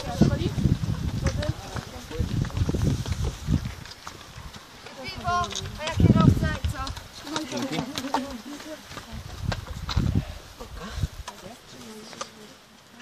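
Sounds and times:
runners' footfalls on dirt: 0.0 - 12.2
people calling out and talking: 0.0 - 13.0.

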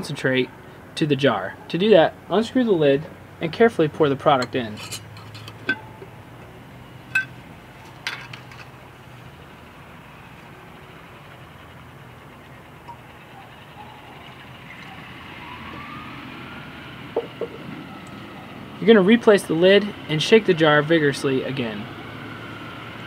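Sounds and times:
low background hum: 0.0 - 21.9
glass jar lid clinking: 4.4 - 6.5, 7.1 - 7.4
faint passing vehicle: 9.1 - 23.0.

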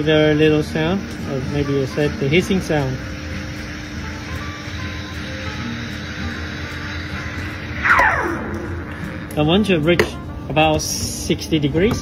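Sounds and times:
steam wand hissing into milk: 0.0 - 7.8
background music: 0.0 - 12.0
falling swooping tone: 7.8 - 9.2.

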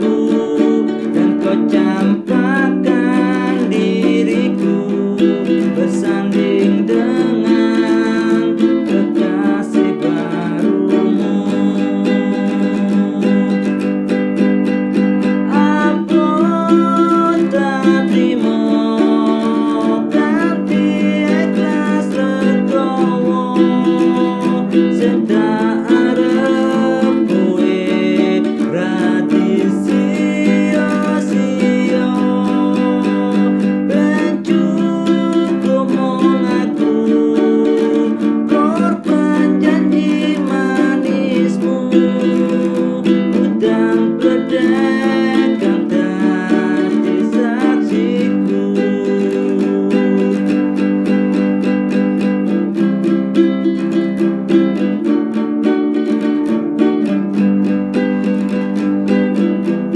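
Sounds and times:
man singing: 0.0 - 59.9
small guitar plucked chords: 0.0 - 59.9.

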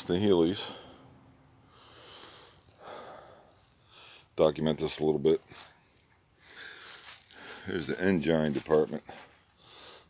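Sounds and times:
crickets droning: 0.0 - 10.0.

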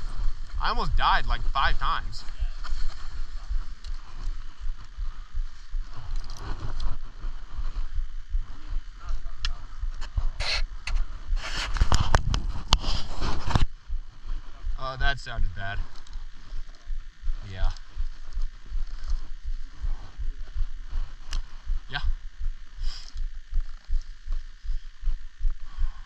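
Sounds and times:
wind rumble on microphone: 0.0 - 26.0.

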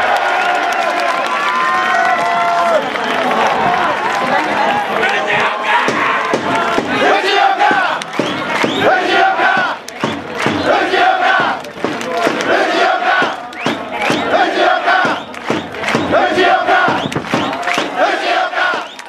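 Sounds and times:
crowd chanting and shouting: 0.0 - 19.0.

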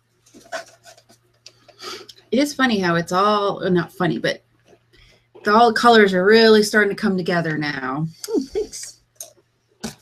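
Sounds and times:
paintbrush scratching on paper: 0.4 - 1.2.

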